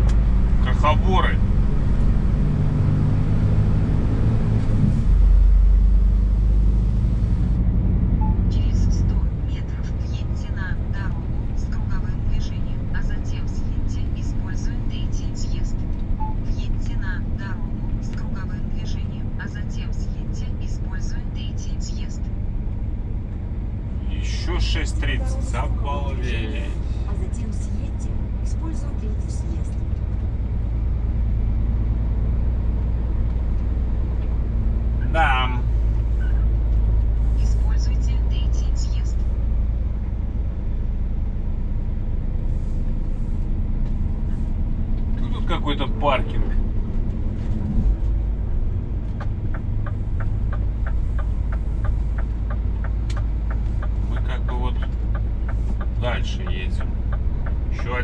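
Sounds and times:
truck engine drone: 0:00.0 - 0:58.0
regular ticking: 0:49.1 - 0:58.0.

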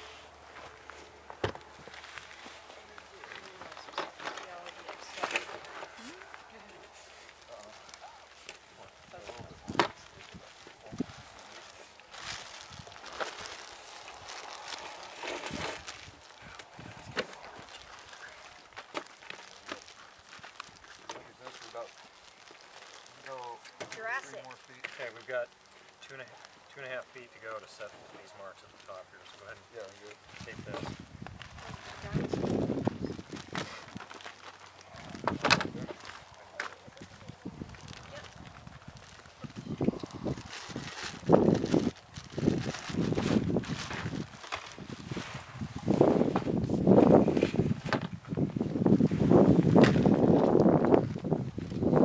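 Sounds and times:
faint voices: 0:00.0 - 0:18.8.

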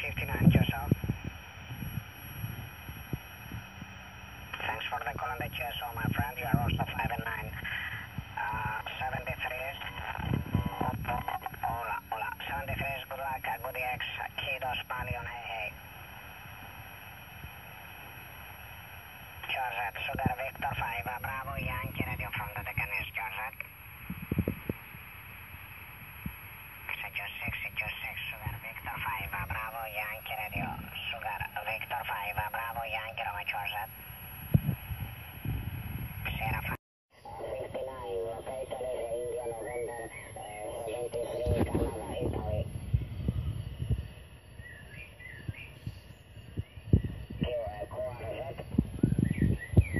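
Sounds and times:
thin voice over radio receiver: 0:00.0 - 0:01.1, 0:04.5 - 0:15.8, 0:19.4 - 0:23.7, 0:26.9 - 0:34.0, 0:36.2 - 0:42.8, 0:47.4 - 0:48.8.

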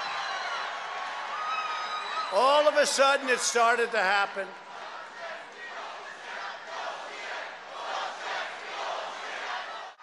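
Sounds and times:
large crowd shouting and cheering: 0:00.0 - 0:10.0.

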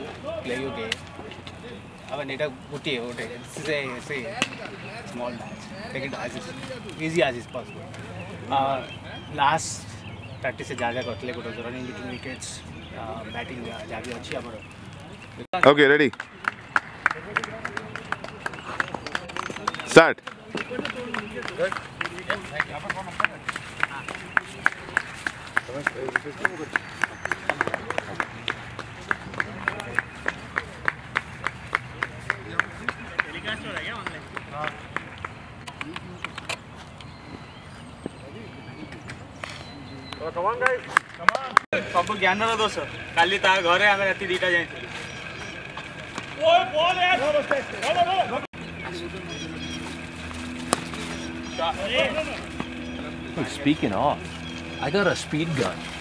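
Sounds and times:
faint voices talking: 0:00.0 - 0:56.0
rhythmic hand clapping: 0:15.5 - 0:36.0
distant voices calling out: 0:41.8 - 0:56.0
steady low hum: 0:41.8 - 0:56.0.

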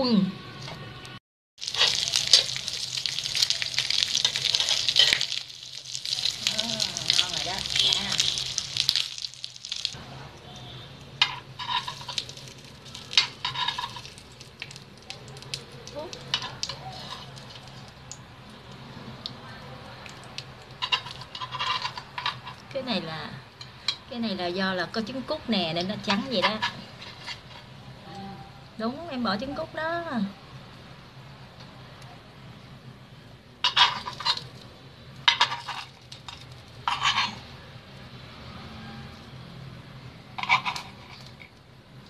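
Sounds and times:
cakes sizzling in oil: 0:01.6 - 0:27.7, 0:33.6 - 0:39.4.

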